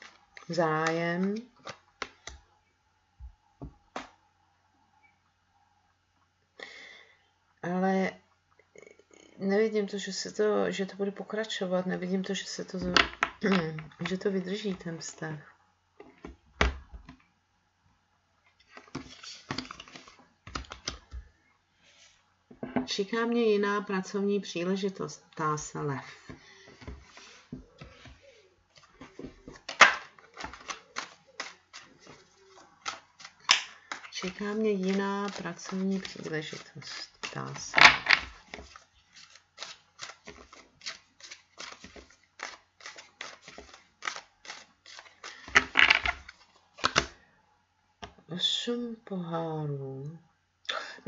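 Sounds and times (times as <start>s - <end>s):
cards being shuffled: 0.0s - 2.4s, 18.6s - 21.2s, 26.8s - 47.1s
cards sliding across table: 26.8s - 29.6s.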